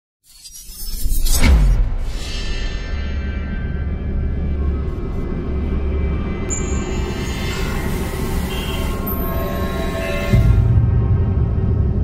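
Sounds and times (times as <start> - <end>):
music: 1.4 - 12.0
whoosh with glassy shimmer: 6.5 - 10.4.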